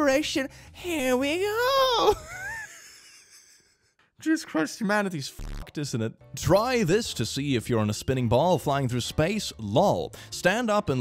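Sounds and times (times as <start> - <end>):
man laughing: 2.1 - 4.0.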